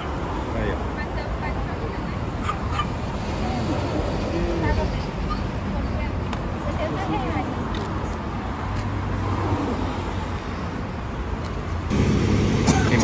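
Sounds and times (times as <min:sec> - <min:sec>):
street traffic: 0:00.0 - 0:13.0
vehicle engine rumbling: 0:00.0 - 0:13.0.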